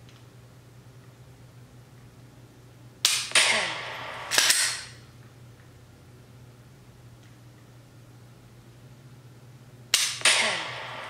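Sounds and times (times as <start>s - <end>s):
simulated gunshots: 3.0s - 5.0s, 10.0s - 11.0s.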